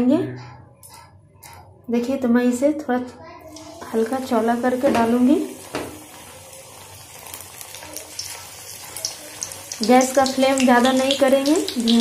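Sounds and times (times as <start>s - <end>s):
deep-frying sizzle: 3.5s - 12.0s.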